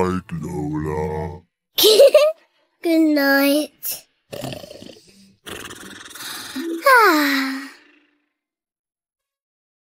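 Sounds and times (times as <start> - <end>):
rumbling cartoon snore: 4.3 - 8.5.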